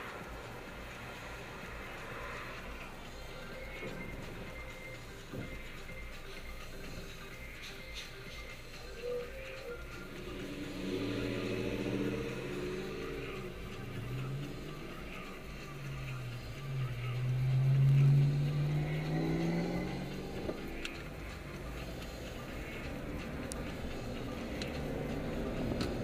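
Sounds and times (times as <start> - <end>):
car engine accelerating: 0.0 - 26.0.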